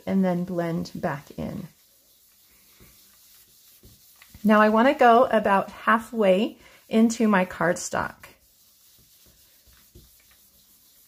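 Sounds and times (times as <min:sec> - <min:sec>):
brush rubbing on cardstock: 0:00.0 - 0:11.0.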